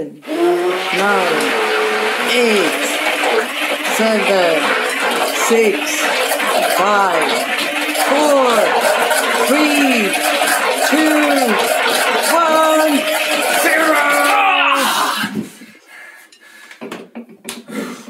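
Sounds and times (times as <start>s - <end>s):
person counting down: 0.0s - 3.0s
immersion blender motor: 0.0s - 15.4s.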